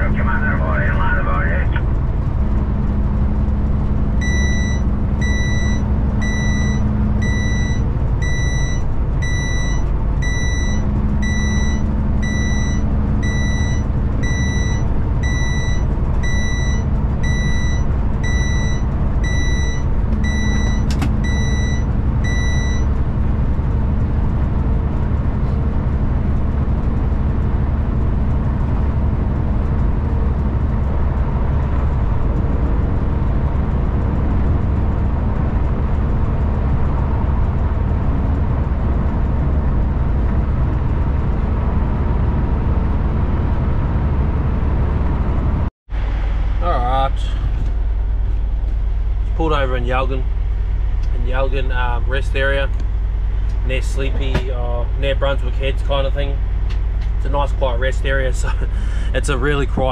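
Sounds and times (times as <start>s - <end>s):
truck engine and road noise: 0.0s - 59.9s
high electronic warning beep: 4.2s - 23.0s.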